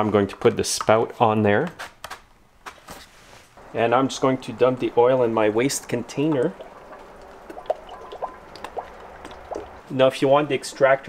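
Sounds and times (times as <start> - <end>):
oil trickling into funnel: 3.6 - 11.0
drips plinking in funnel: 4.0 - 10.0.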